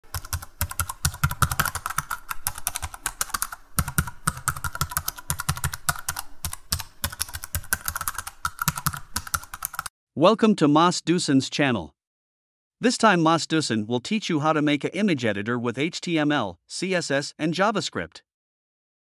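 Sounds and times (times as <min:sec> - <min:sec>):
typing on computer keyboard: 0:00.1 - 0:09.9.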